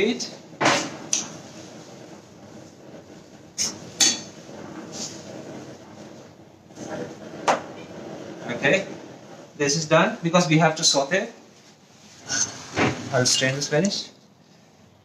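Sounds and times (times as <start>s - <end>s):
boiling water hiss: 0.0s - 15.0s.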